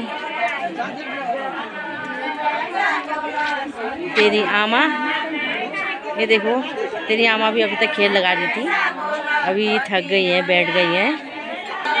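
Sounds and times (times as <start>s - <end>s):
women chattering: 0.0s - 12.0s.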